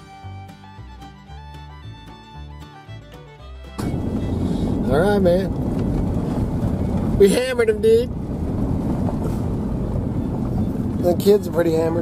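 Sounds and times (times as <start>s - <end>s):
fiddle-led bluegrass music: 0.0s - 8.1s
road and engine noise in cabin: 3.8s - 12.0s.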